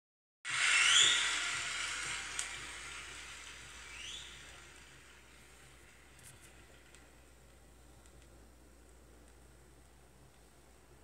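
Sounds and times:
rising whistle-like tone: 0:00.5 - 0:06.9
loud hiss: 0:00.5 - 0:07.9.

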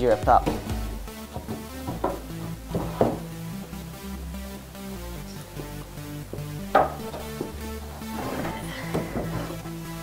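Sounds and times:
electronic background music: 0:00.0 - 0:10.0
wooden boards knocking: 0:00.4 - 0:03.4, 0:06.3 - 0:09.7.

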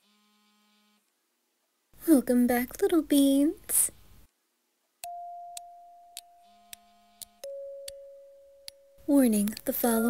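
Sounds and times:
soft ticks: 0:09.4 - 0:10.0.

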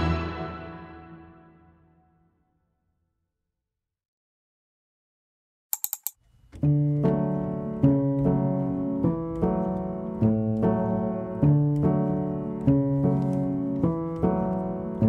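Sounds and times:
piano chords: 0:00.0 - 0:01.9, 0:06.6 - 0:15.0
quick clicks: 0:05.7 - 0:06.7.

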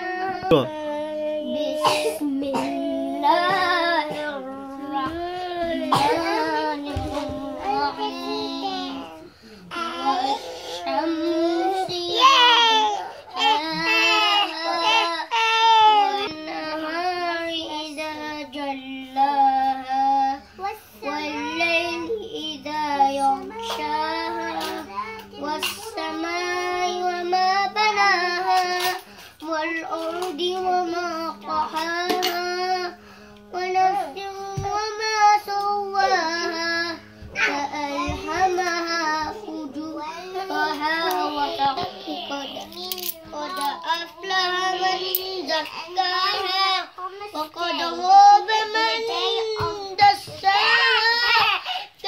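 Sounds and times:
boy singing unaccompanied: 0:00.0 - 0:52.0.

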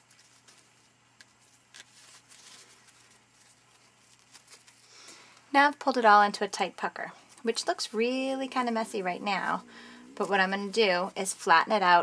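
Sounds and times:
fabric ribbon rustling: 0:00.0 - 0:04.9, 0:07.0 - 0:12.0.

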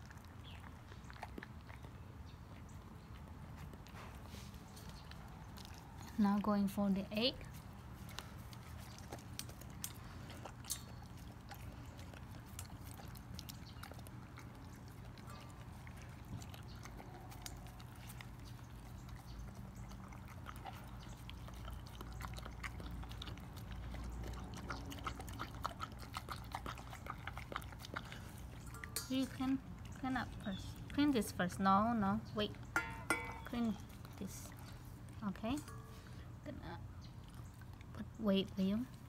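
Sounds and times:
dog licking and lapping: 0:00.0 - 0:35.9
small clicks on steel bowl: 0:28.7 - 0:29.4, 0:32.8 - 0:33.6.

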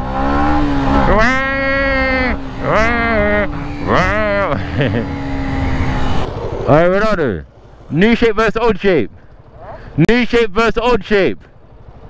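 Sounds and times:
motorcycle engine hum: 0:00.0 - 0:12.0.

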